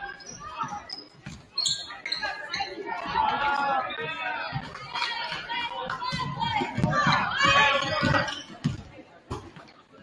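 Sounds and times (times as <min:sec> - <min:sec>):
crowd chatter: 0:00.0 - 0:10.0
people shouting and calling out: 0:01.9 - 0:08.6.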